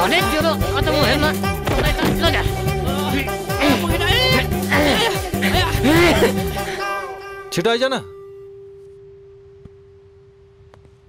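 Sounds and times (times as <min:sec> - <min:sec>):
steady pure tone: 0:08.1 - 0:11.0.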